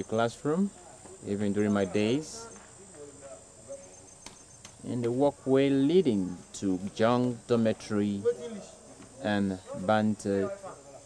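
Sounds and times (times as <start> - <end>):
man speaking: 0.0 - 4.1, 4.8 - 11.0
insect chirping: 0.0 - 11.0.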